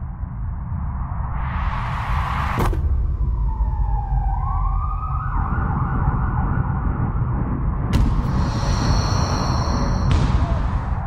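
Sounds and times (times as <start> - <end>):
low rumble: 0.0 - 11.0
siren wailing: 3.3 - 7.4, 8.3 - 10.9
high steady beep: 8.4 - 10.2.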